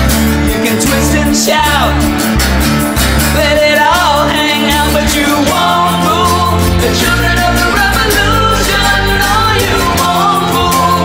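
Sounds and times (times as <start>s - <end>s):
glam rock song: 0.0s - 11.0s
man singing: 0.4s - 2.3s, 3.2s - 11.0s.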